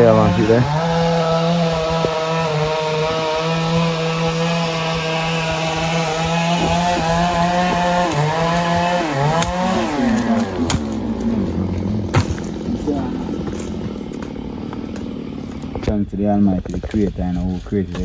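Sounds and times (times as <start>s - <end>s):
small engine running: 0.0s - 18.0s
sharp knocks: 7.8s - 11.0s, 12.1s - 12.6s.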